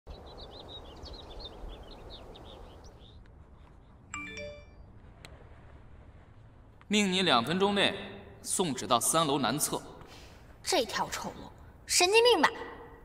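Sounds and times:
small birds chirping: 0.1 - 4.1
rising chime: 4.1 - 4.8
low outdoor rumble: 4.7 - 7.3.

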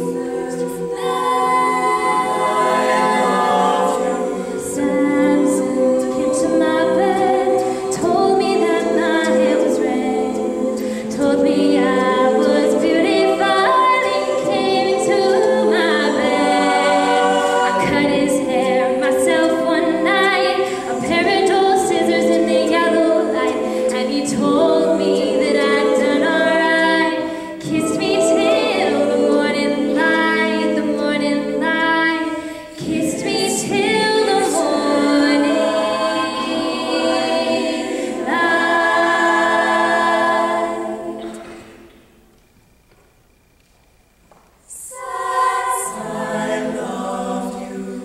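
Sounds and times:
a cappella group singing: 0.0 - 42.2, 44.7 - 48.0.

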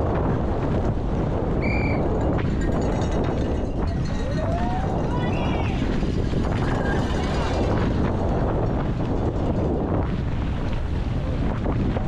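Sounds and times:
wind rush over microphone: 0.0 - 12.0
bike tyres and frame rattling: 0.2 - 10.9.

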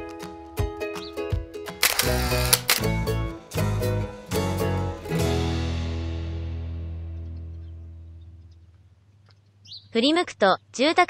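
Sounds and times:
sustained chords over bass line: 2.9 - 8.4.

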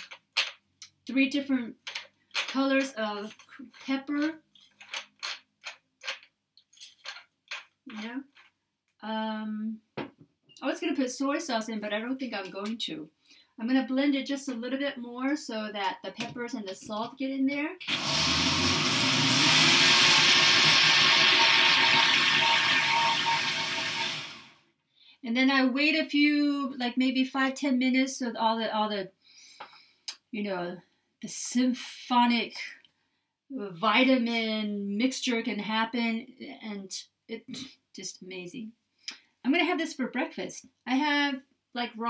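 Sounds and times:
pepper mill grinding: 17.8 - 24.5
blender running: 17.8 - 24.6.

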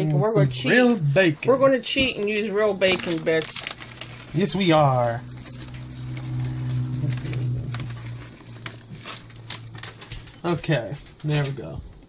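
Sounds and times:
plastic pouch rustling: 2.1 - 11.8
low hum: 3.6 - 10.4.

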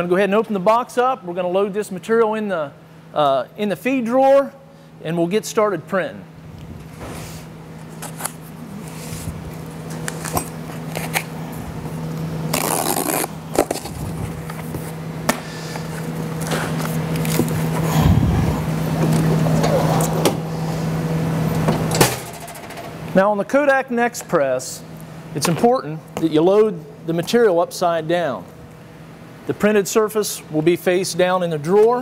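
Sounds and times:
low machine hum: 0.0 - 32.0
packing tape being cut: 7.9 - 9.0, 10.0 - 11.3, 12.5 - 14.8.

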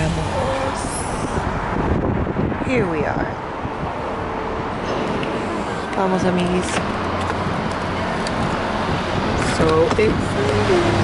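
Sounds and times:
city street traffic hum: 0.0 - 11.0.

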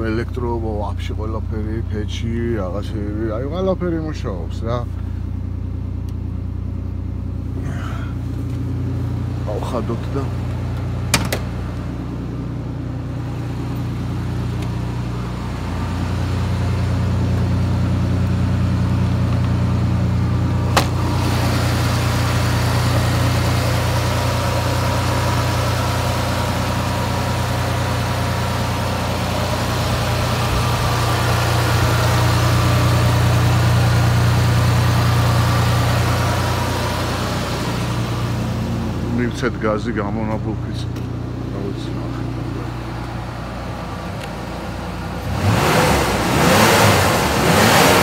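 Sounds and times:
car engine idling: 0.0 - 48.0.

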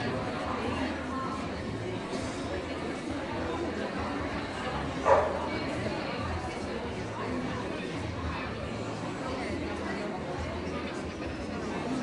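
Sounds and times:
murmur of people talking: 0.0 - 12.0
dog barking: 5.0 - 5.5.

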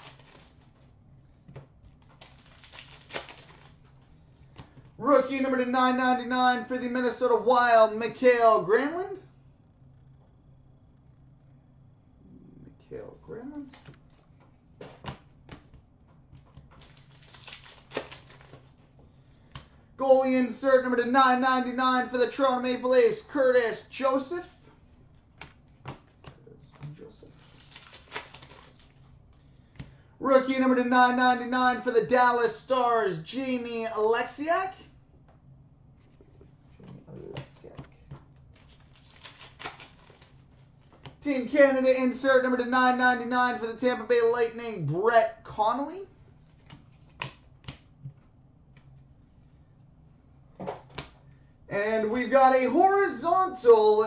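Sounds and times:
cards rustling: 0.0 - 0.9, 1.9 - 4.1, 16.5 - 18.9, 25.5 - 29.0, 38.4 - 41.2.

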